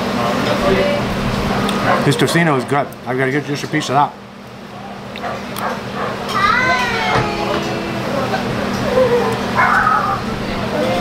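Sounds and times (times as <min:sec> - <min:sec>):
background chatter of voices: 0:00.0 - 0:11.0
steady low hum: 0:00.0 - 0:11.0.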